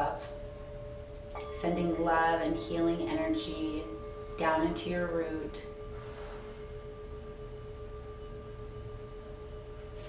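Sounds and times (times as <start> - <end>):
singing bowl ringing: 0.0 - 10.0.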